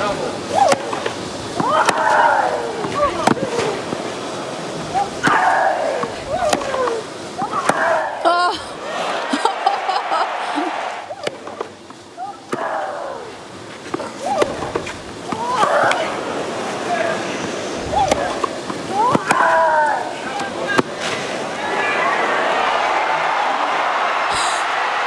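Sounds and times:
racket hitting tennis ball: 0.5 - 4.0, 5.0 - 8.2, 11.1 - 11.7, 12.5 - 12.7, 13.8 - 16.2, 17.9 - 19.6.

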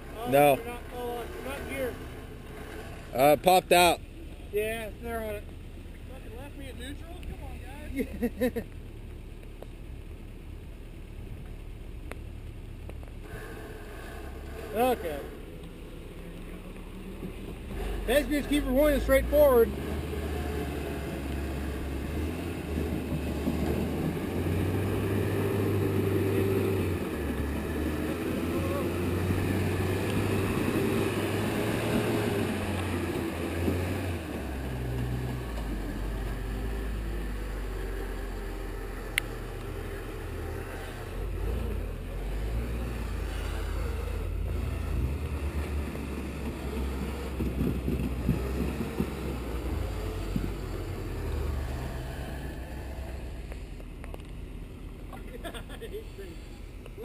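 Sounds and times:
truck engine at low revs: 0.0 - 57.0.

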